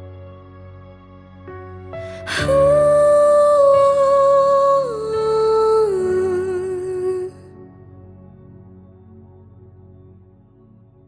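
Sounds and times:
person singing long wordless note: 0:02.0 - 0:07.8.

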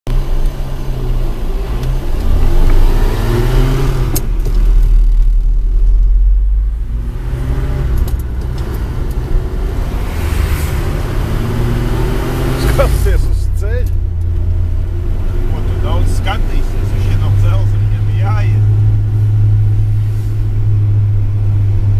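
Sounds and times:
truck engine accelerating: 0:00.1 - 0:21.9.

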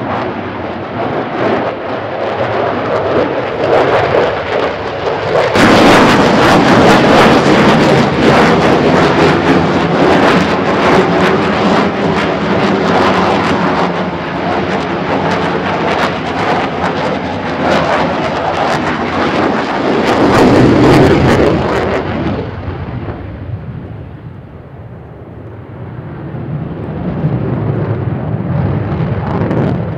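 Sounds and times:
fighter jet engines roaring overhead: 0:00.0 - 0:29.9.

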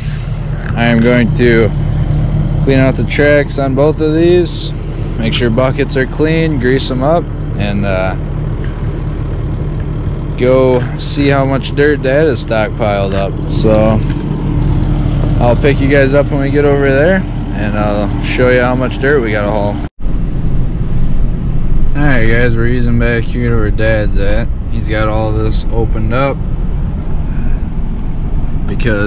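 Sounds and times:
engine idling: 0:00.0 - 0:29.0.

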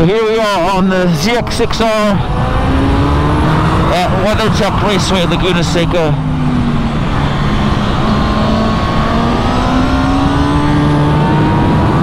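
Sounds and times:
motorcycle engine accelerating: 0:01.9 - 0:12.0
wind rushing: 0:01.9 - 0:12.0.

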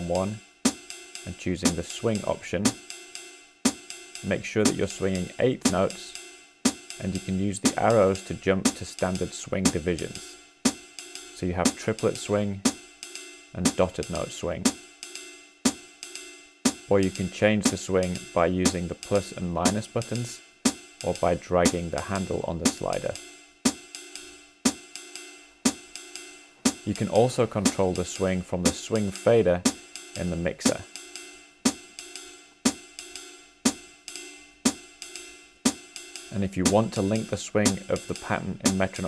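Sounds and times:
hi-hat foot chick: 0:00.0 - 0:39.0
ride cymbal strikes: 0:00.0 - 0:39.0.

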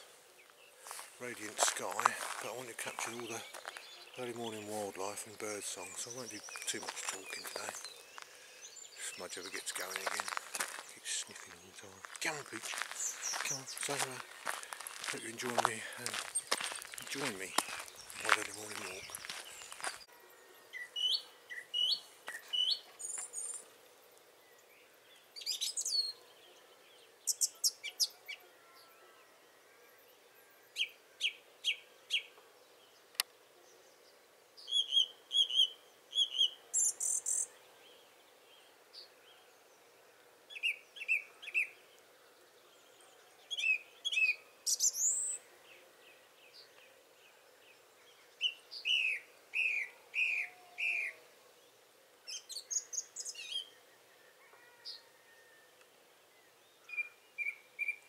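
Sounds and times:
songbirds singing: 0:00.0 - 0:58.0.

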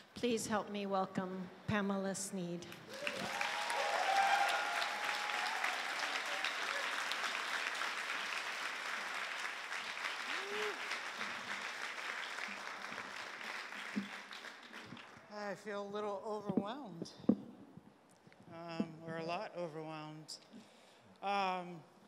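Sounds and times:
people cheering: 0:02.9 - 0:15.1
audience applause: 0:02.9 - 0:15.2.

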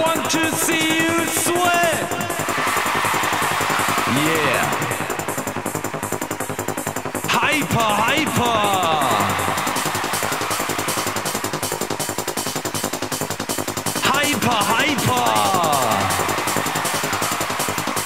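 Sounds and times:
fast electronic techno beat: 0:00.0 - 0:18.0.

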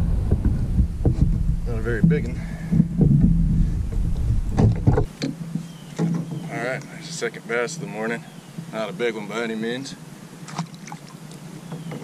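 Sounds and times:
wind buffeting microphone: 0:00.0 - 0:05.2
short knocks: 0:00.3 - 0:06.5.

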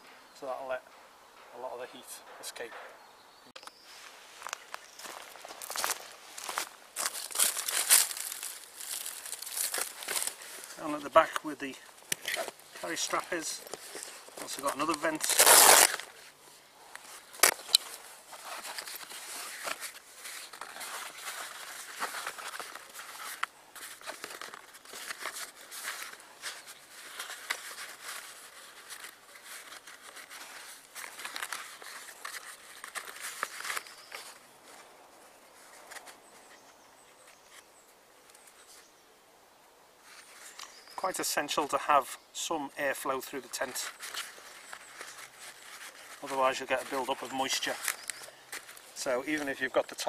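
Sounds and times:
stiff canvas rustling and scraping: 0:12.2 - 0:34.8.

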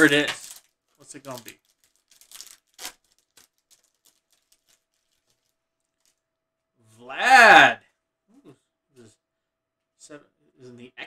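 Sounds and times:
trading cards rustling and tapping: 0:00.0 - 0:06.2.

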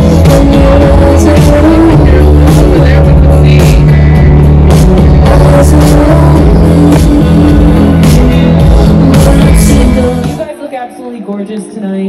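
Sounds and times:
live band music: 0:00.0 - 0:10.5.

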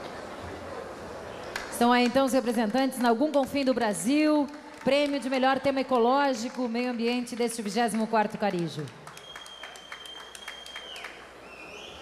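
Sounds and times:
scattered applause: 0:04.0 - 0:12.0.

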